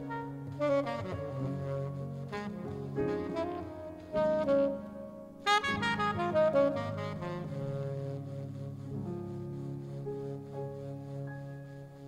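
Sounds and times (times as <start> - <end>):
saxophone playing: 0.0 - 11.1
jazz fusion band playing: 5.4 - 8.4.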